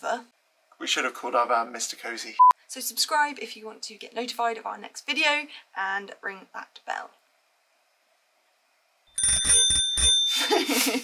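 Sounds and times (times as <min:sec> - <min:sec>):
bell strikes: 0:09.1 - 0:10.6
woman laughing: 0:10.3 - 0:11.0.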